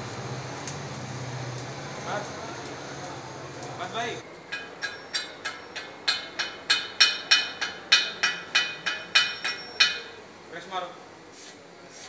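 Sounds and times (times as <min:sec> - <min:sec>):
hammer striking steel: 0:04.4 - 0:10.2.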